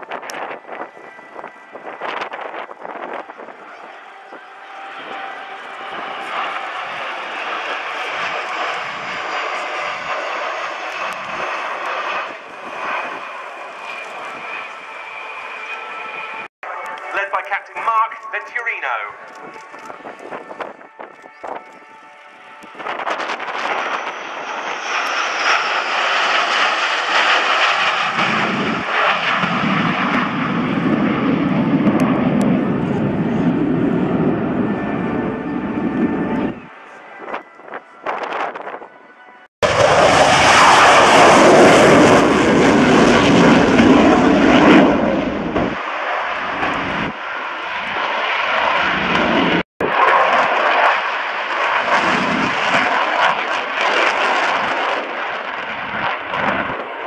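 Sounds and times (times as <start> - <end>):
fighter jets passing overhead: 0.0 - 57.0
jet taking off low: 0.0 - 57.0.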